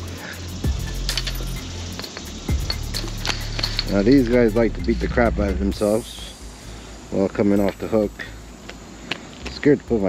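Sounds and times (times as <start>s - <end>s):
background music with bass: 0.0s - 8.7s
metallic clinks on fence rail: 0.7s - 4.4s.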